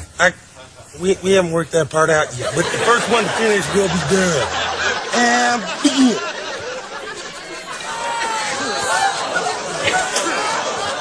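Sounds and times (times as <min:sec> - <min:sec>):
indistinct chatter of voices: 0:00.0 - 0:11.0.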